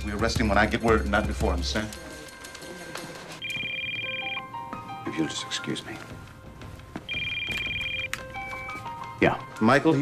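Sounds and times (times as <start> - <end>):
soft background music: 0.0 - 10.0
phone electronic trilling ring: 3.4 - 4.5, 7.1 - 8.8.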